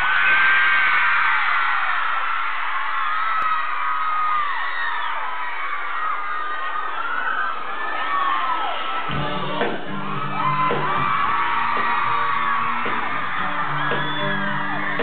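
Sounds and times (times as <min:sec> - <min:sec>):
crowd screaming: 0:00.0 - 0:15.0.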